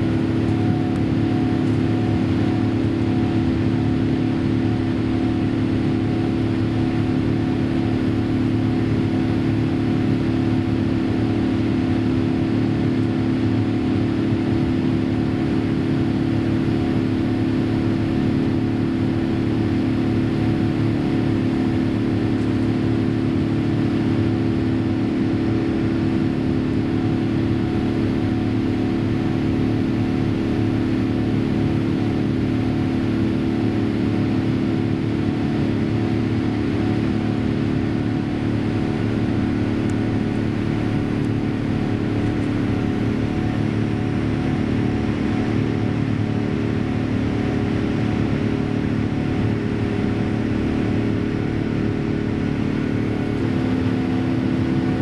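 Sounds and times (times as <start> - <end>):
airliner cabin engine drone: 0.0 - 55.0
low steady hum: 0.0 - 55.0.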